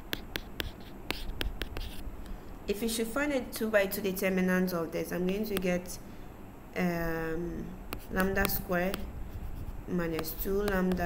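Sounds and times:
stylus tapping on tablet: 0:00.0 - 0:02.0, 0:05.5 - 0:05.8, 0:07.9 - 0:11.0.

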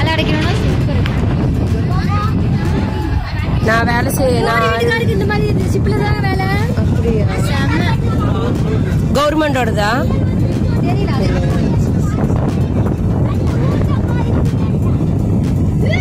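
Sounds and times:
boat engine rumble: 0:00.0 - 0:16.0
people's voices: 0:00.0 - 0:16.0.

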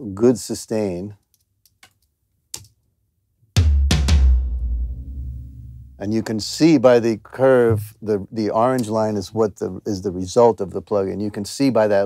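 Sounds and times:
tom-tom fill booming: 0:03.6 - 0:06.4.

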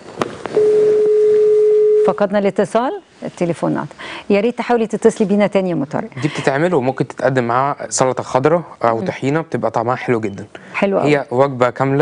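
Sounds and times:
steady telephone line tone: 0:00.5 - 0:02.4.

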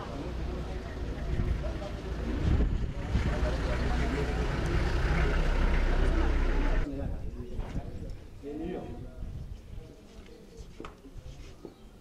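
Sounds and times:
people talking: 0:00.0 - 0:11.8.

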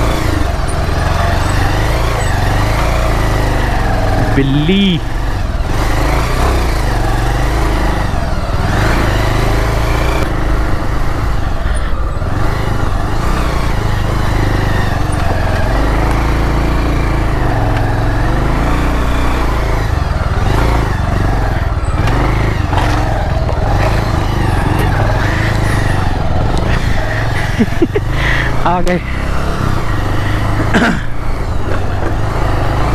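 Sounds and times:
motorcycle engine running: 0:00.0 - 0:32.9.

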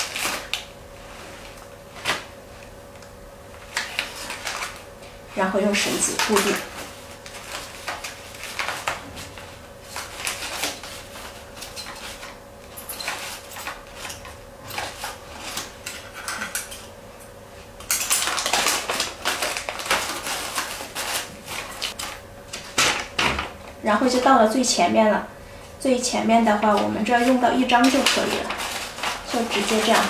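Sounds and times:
wrapping paper crinkling: 0:00.0 - 0:02.7, 0:03.5 - 0:16.1, 0:17.8 - 0:22.8, 0:26.5 - 0:30.0.

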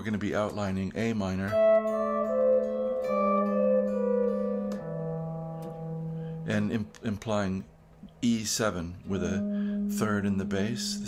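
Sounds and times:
electric guitar plucked notes: 0:01.4 - 0:07.0, 0:09.1 - 0:11.0
sustained bass note: 0:09.1 - 0:11.0.

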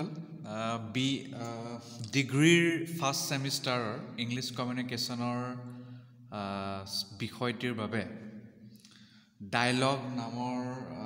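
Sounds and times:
man speaking slowly: 0:00.0 - 0:08.5, 0:09.4 - 0:11.0.

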